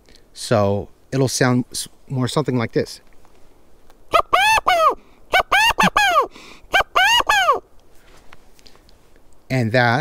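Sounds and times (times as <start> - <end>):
quail call whistle: 4.1 - 7.6.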